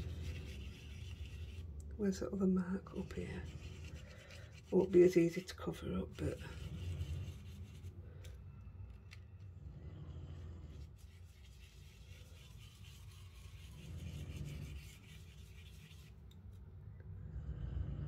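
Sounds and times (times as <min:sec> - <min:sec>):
brush scrubbing over stencil: 0:00.0 - 0:01.8, 0:02.8 - 0:08.0, 0:10.7 - 0:16.2.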